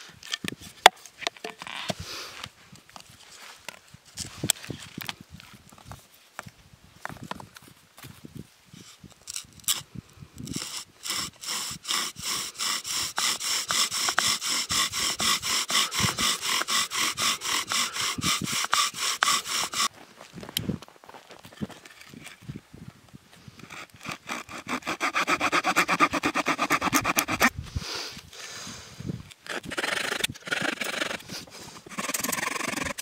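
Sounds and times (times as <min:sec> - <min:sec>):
bow drill grinding: 0:10.4 - 0:19.9, 0:23.6 - 0:27.5, 0:29.4 - 0:33.0.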